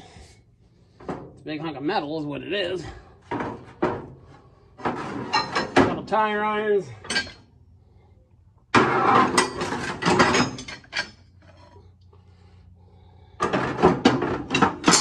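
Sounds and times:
metal bars clanking and scraping: 4.8 - 6.0, 7.0 - 7.5, 8.8 - 11.8, 13.4 - 15.0.

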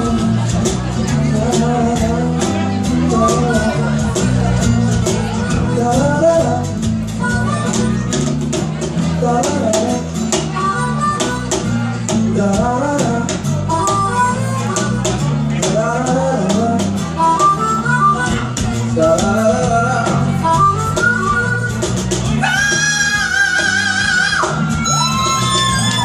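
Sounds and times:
bass guitar: 0.0 - 26.0
cajon beat: 0.0 - 26.0
strummed acoustic guitars: 0.0 - 26.0
harmonica solo: 10.5 - 12.0, 13.7 - 15.3, 17.1 - 18.9, 20.4 - 26.0.

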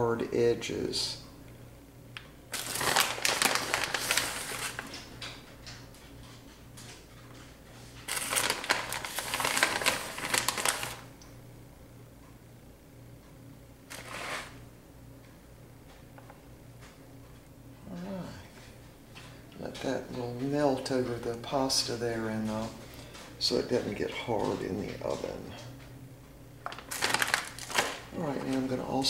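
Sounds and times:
steady low hum: 0.0 - 29.0
plastic bag crinkling: 2.5 - 5.3, 8.0 - 11.1, 13.9 - 14.6, 26.6 - 29.0.

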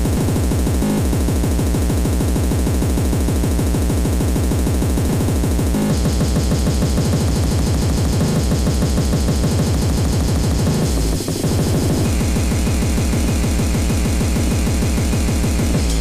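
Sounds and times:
fast distorted kick drums: 0.0 - 16.0
harsh noisy synths: 0.0 - 16.0.

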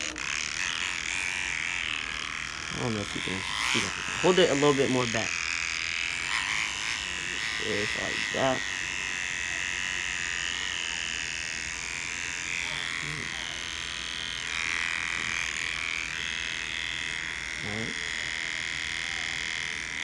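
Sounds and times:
electric hair trimmer buzzing: 0.0 - 20.0.

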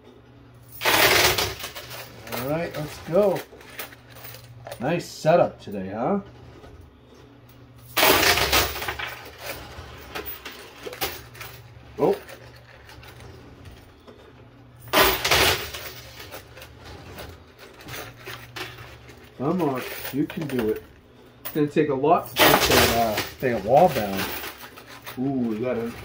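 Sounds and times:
steady low hum: 0.0 - 26.0
coins clattering on metal: 0.6 - 4.6, 7.8 - 13.6, 14.8 - 20.9, 22.3 - 26.0.

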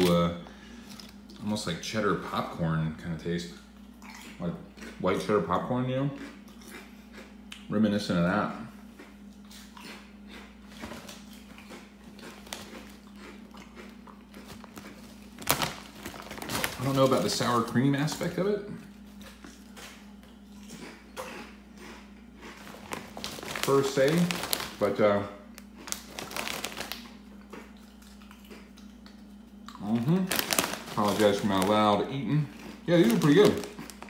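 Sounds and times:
chewing crunchy chips: 0.8 - 1.6, 3.5 - 7.7, 8.8 - 34.0
chip bag crinkling: 10.4 - 18.4, 19.0 - 28.8, 29.7 - 34.0.

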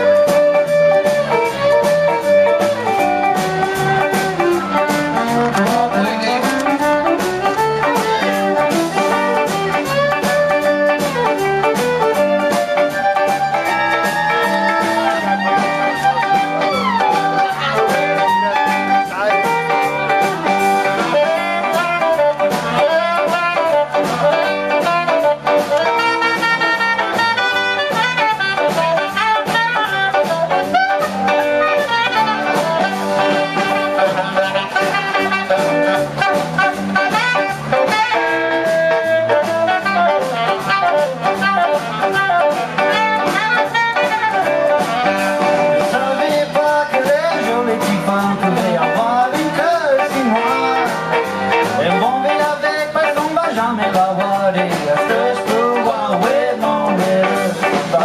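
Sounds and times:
fiddle: 0.0 - 37.8
drums: 0.0 - 58.0
saxophone lead: 0.0 - 58.0
strummed guitars: 0.0 - 58.0.

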